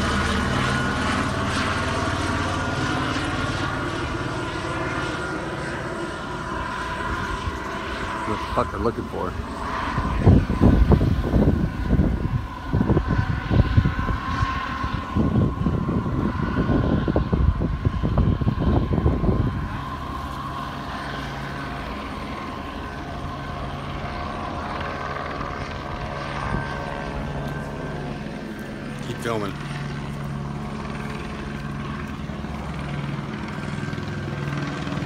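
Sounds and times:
helicopter drone with turbine whine: 0.0s - 35.0s.

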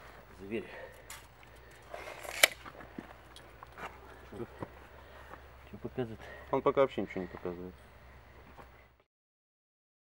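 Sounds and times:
tape measure retracting and snapping: 2.0s - 2.6s.

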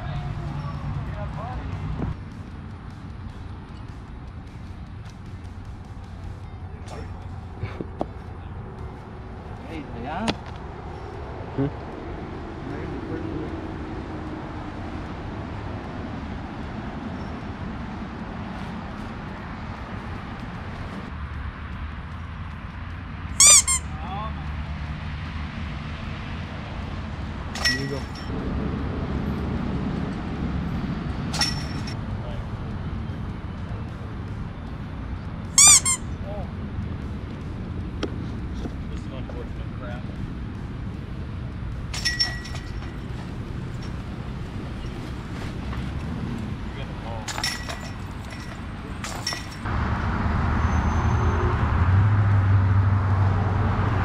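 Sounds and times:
open-air background: 0.0s - 54.0s
high-pitched squeal: 23.4s - 24.0s, 35.6s - 36.2s, 50.5s - 51.8s
sharp clinks: 27.5s - 28.3s, 31.3s - 32.0s, 41.9s - 44.2s, 47.2s - 49.7s.

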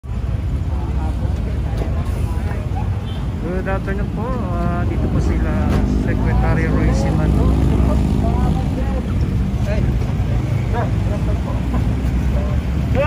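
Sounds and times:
road traffic rumble: 0.0s - 13.0s
vehicle engine hum: 0.0s - 13.0s
scattered voices: 0.1s - 13.0s.

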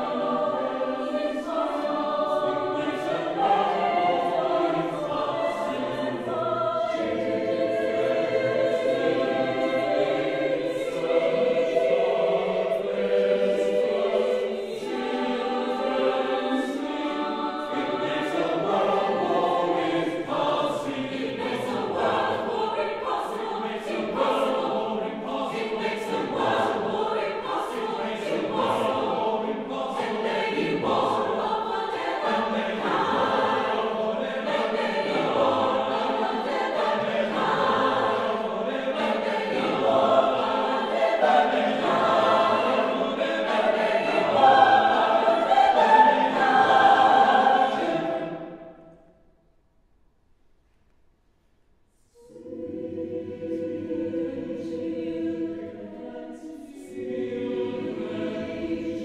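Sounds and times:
choir singing: 0.0s - 49.3s, 52.0s - 59.0s.

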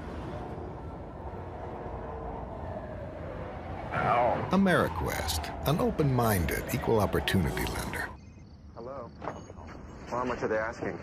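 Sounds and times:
low rumble of city traffic: 0.0s - 11.0s.

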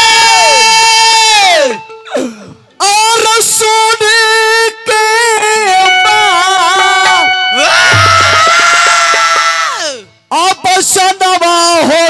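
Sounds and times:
man singing long note: 2.8s - 8.2s
hand drum strokes: 7.9s - 9.2s.

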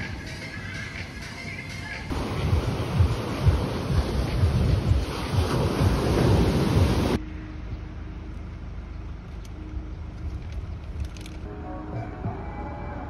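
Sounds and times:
sea waves breaking on beach: 2.1s - 7.2s.

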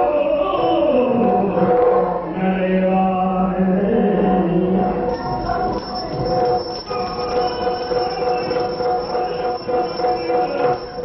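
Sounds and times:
instrumental drone: 3.8s - 11.0s.

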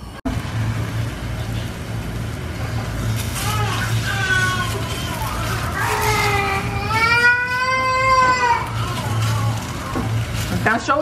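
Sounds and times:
baby crying: 3.4s - 10.4s.

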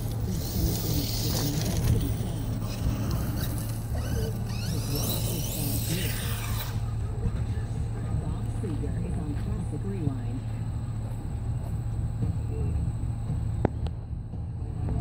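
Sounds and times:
electric motor whining: 0.0s - 7.2s.

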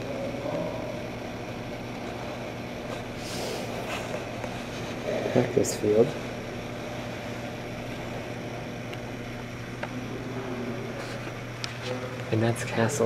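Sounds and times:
even hiss: 3.1s - 4.2s.

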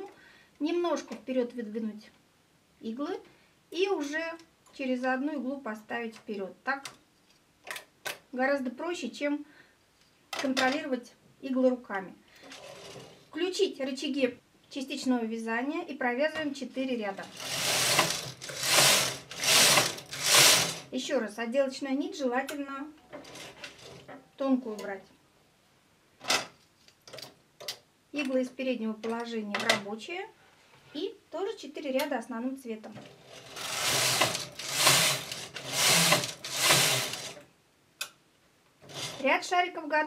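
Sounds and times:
knitting machine carriage swishing: 17.2s - 20.9s, 23.2s - 24.1s, 33.0s - 37.4s, 38.8s - 39.3s.

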